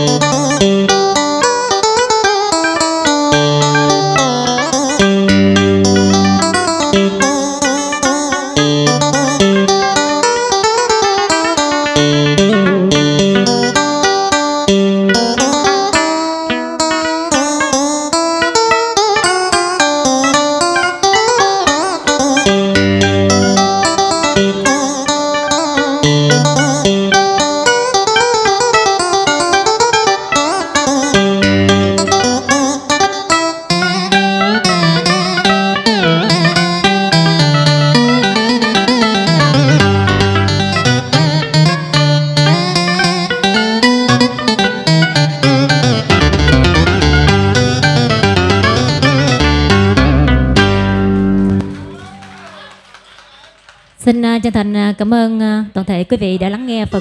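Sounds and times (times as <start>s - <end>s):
keyboard melody with bent notes: 0.0s - 52.0s
plucked lute: 0.0s - 52.1s
stepping bass line: 0.0s - 52.2s.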